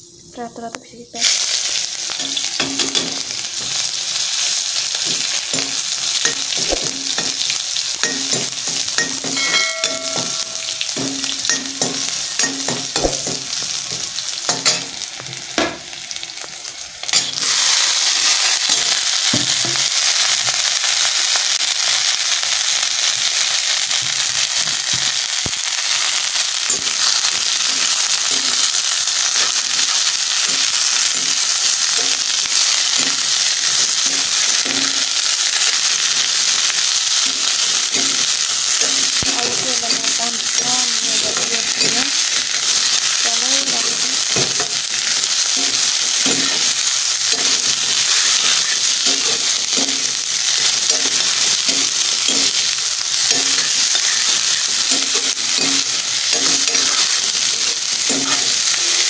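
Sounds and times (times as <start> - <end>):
onion frying in hot oil: 0.0 - 59.0
vegetables sizzling in oil: 0.0 - 59.0
spoon stirring and scraping pan: 25.9 - 59.0.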